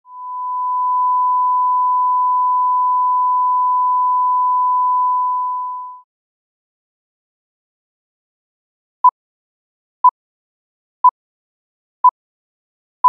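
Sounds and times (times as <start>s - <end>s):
steady reference tone: 0.1s - 5.8s.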